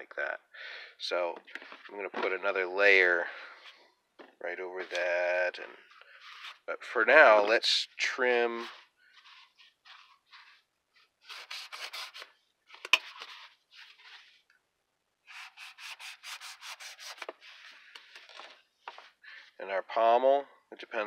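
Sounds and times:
knife sawing into foam: 11.3 - 12.2, 15.3 - 17.2.

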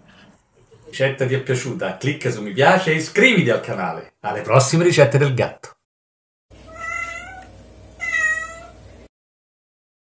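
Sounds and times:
cat meowing: 6.6 - 8.8.

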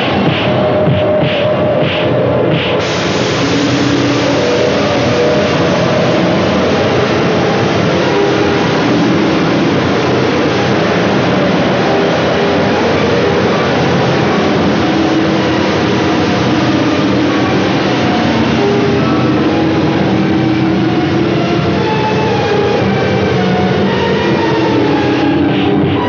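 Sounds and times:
steady roaring noise: 0.0 - 26.0
long held tones: 2.8 - 26.0.

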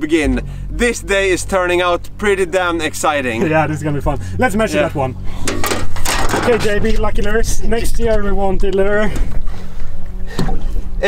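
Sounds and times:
low boat rumble: 0.0 - 11.0.

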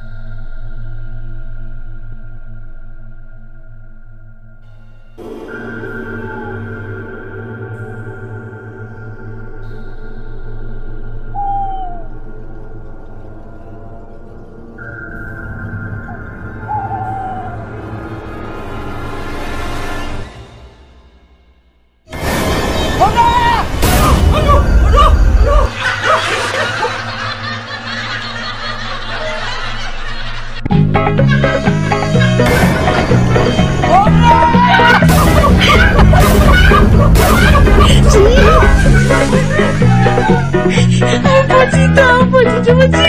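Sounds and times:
eerie ambient droning music: 0.0 - 43.0
hooting note: 5.2 - 12.4, 14.8 - 18.7
snickering laughter: 24.8 - 33.0, 34.6 - 41.8.

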